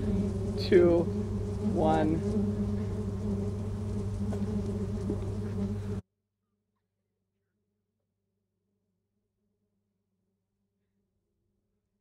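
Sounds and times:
bees buzzing: 0:00.0 - 0:06.0.

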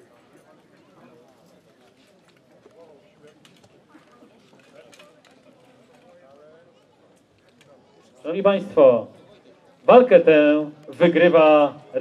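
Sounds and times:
distant background chatter: 0:00.0 - 0:10.2.

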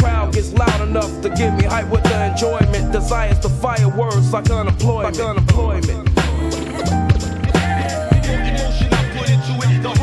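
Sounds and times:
hip hop beat: 0:00.0 - 0:10.0.

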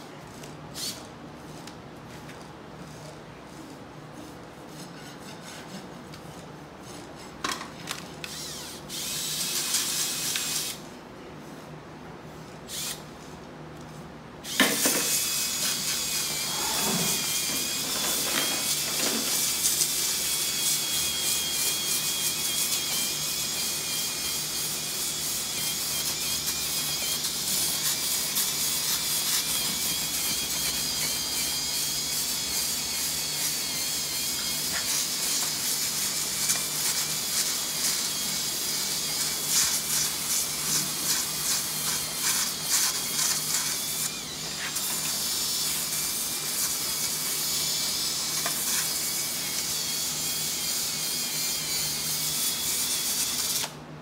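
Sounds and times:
cordless drill sanding hoof: 0:14.5 - 0:53.7.

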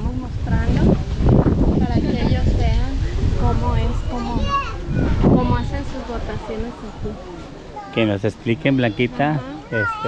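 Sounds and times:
people talking in high voices: 0:01.8 - 0:10.0.

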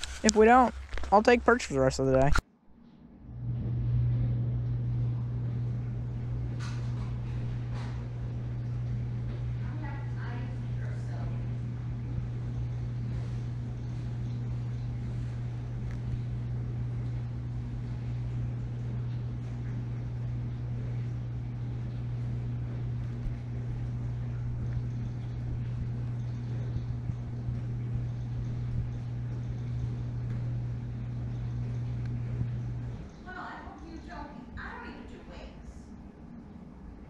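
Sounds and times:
low machine hum: 0:00.0 - 0:37.0.

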